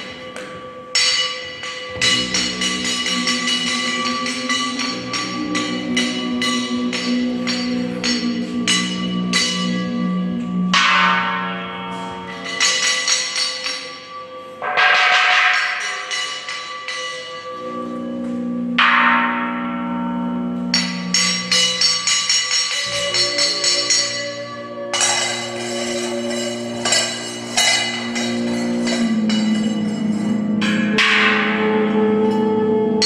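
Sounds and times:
bronze bells ringing: 0:00.0 - 0:32.2
light clinking strikes: 0:00.0 - 0:32.5
steady low tone: 0:00.0 - 0:33.0.

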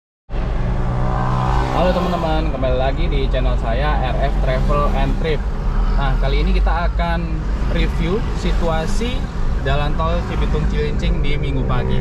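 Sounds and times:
car engine drone: 0:00.3 - 0:12.0
road noise: 0:00.3 - 0:12.0.

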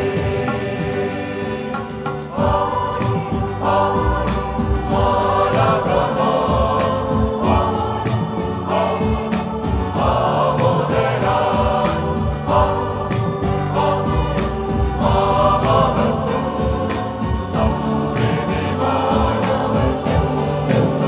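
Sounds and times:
choir singing: 0:00.0 - 0:21.0
keyboard accompaniment: 0:00.0 - 0:21.0
steady percussive beat: 0:00.0 - 0:21.0.

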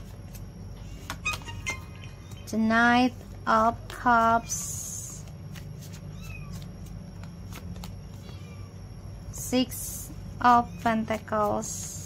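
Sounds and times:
cards clicking and tapping: 0:00.0 - 0:02.5, 0:05.1 - 0:08.4.

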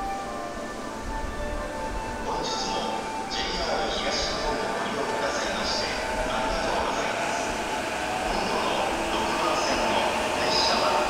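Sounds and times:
electric train approaching: 0:00.0 - 0:11.0
platform background noise: 0:01.7 - 0:11.0.

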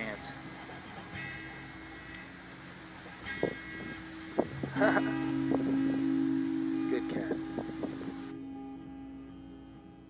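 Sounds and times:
outdoor background noise: 0:00.0 - 0:10.0
acoustic guitar chord ringing: 0:03.2 - 0:10.0
man laughing: 0:04.6 - 0:05.3.

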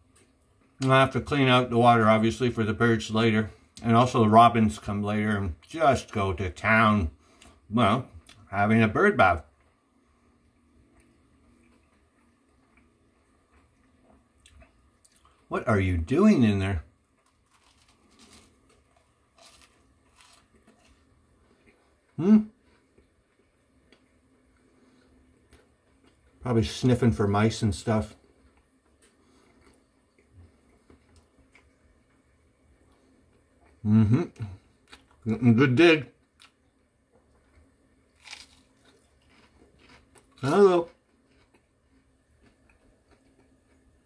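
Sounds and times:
toast being chewed: 0:17.1 - 0:26.4, 0:28.2 - 0:33.8, 0:36.2 - 0:44.0.

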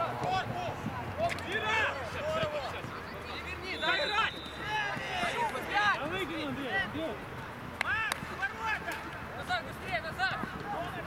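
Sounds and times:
players shouting: 0:00.0 - 0:07.2.

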